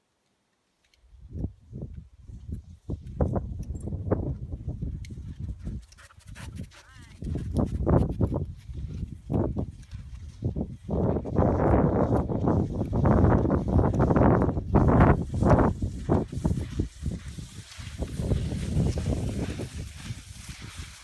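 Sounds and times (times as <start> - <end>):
wind rumble on microphone: 1.1 - 21.0.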